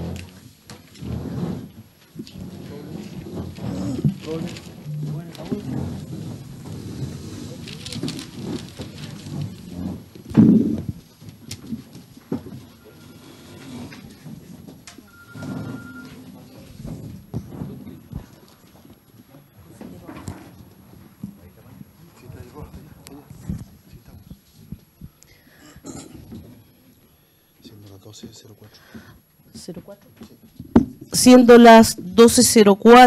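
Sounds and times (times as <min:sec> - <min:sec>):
shuffling: 0:00.0 - 0:25.2
loud thump: 0:09.4 - 0:11.0.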